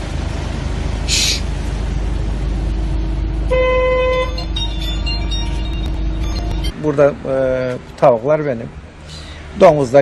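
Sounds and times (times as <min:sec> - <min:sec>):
car horn: 0:03.5 - 0:06.6.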